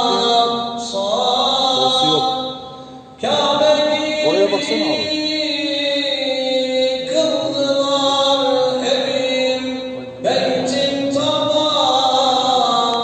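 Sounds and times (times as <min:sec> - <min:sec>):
man chanting religious recitation: 0:00.0 - 0:13.0.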